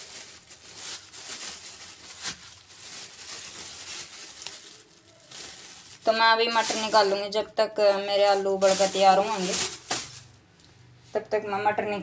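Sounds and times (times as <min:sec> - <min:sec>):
plastic bag crinkling: 0:00.0 - 0:10.5.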